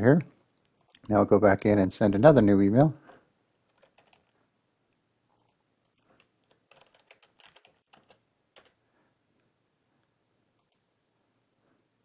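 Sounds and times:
faint keystrokes on keyboard: 0:00.2 - 0:01.1, 0:03.1 - 0:04.4, 0:05.3 - 0:08.8, 0:10.6 - 0:10.9.

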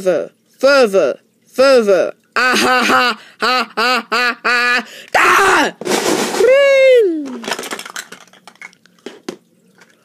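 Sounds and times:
plastic blocks clicking and knocking: 0:07.2 - 0:10.0.

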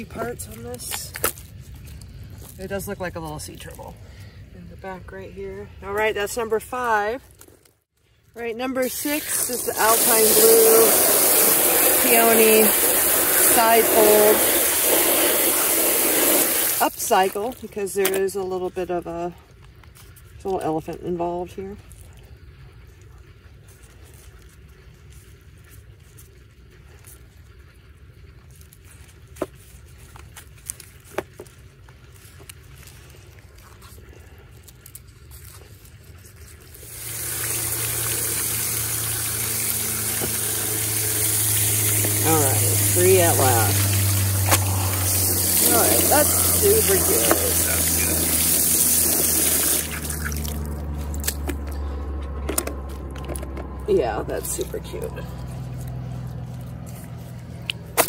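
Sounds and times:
garden hose spraying water: 0:08.3 - 0:19.3, 0:20.2 - 0:52.0, 0:53.9 - 0:58.0.

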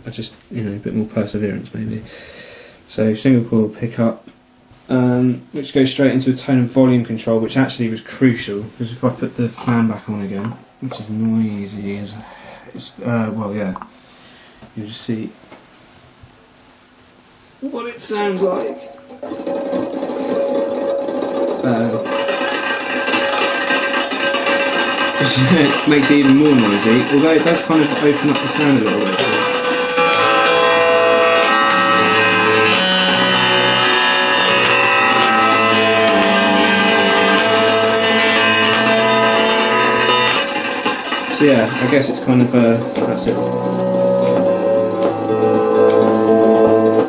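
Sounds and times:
electric fan hiss through pickup: 0:00.0 - 0:47.0
steady hum: 0:00.0 - 0:47.0
electric lyre sustained chord: 0:18.2 - 0:47.0.

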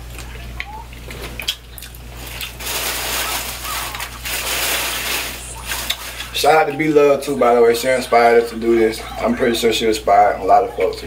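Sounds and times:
low electrical hum: 0:00.0 - 0:11.0
sucking and chewing: 0:00.1 - 0:06.4.

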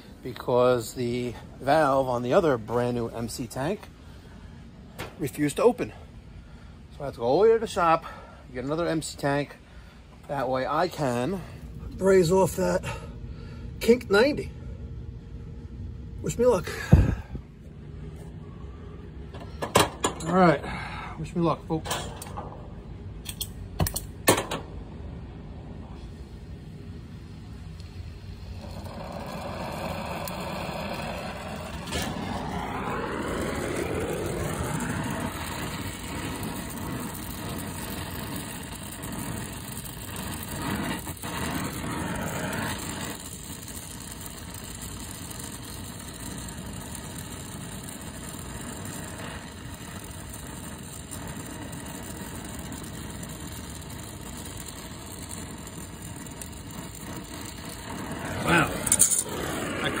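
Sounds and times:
torch flame hissing: 0:25.8 - 1:00.0.

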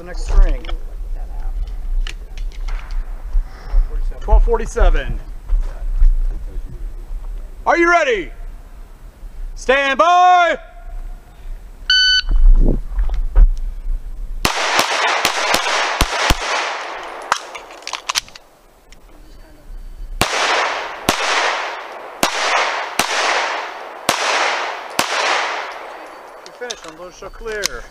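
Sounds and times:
shot timer beep: 0:11.9 - 0:12.4
pistol shots echoing: 0:14.4 - 0:18.2, 0:20.2 - 0:26.6.

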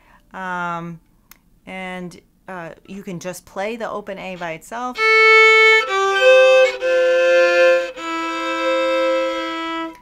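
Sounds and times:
solo fiddle playing: 0:04.4 - 0:10.0.

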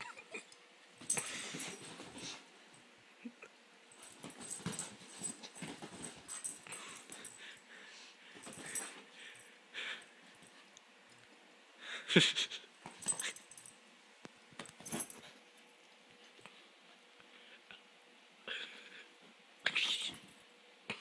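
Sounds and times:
dog breathing and scrambling: 0:01.0 - 0:02.6, 0:03.9 - 0:10.7.

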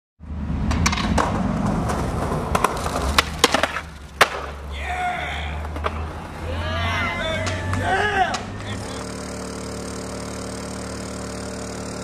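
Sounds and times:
skateboard wheels rolling on concrete: 0:00.2 - 0:09.2
skateboard clacks: 0:00.6 - 0:04.7, 0:05.5 - 0:06.5, 0:07.4 - 0:08.8.

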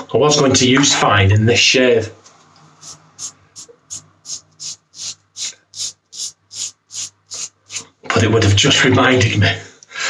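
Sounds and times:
razor scraping stubble: 0:02.8 - 0:08.7.

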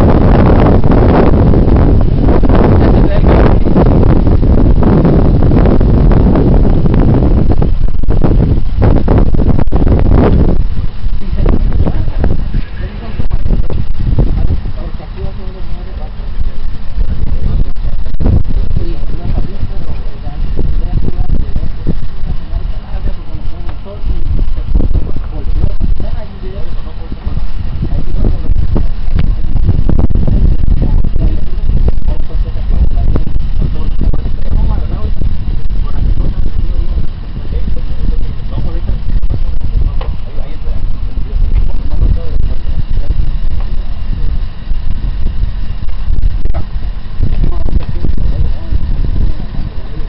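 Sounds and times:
wind buffeting microphone: 0:00.0 - 0:50.0
muffled indistinct voices: 0:02.0 - 0:07.4, 0:09.6 - 0:50.0.

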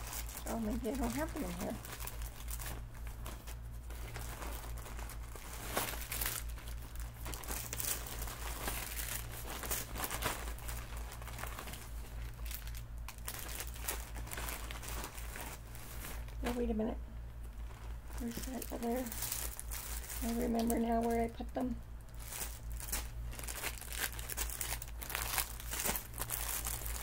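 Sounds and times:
crinkly bag rustling: 0:00.0 - 0:27.0.

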